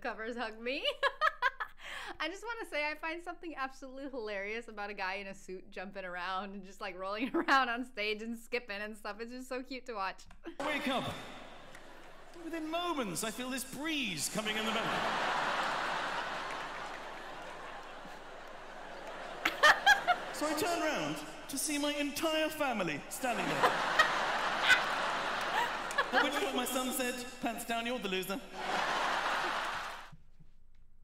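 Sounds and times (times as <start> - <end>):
audience laughing: 10.6 - 30.1.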